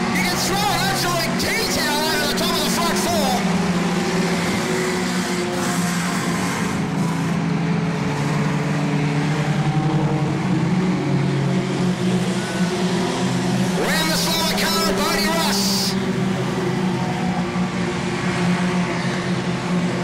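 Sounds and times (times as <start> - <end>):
race car engines: 0.0 - 20.0.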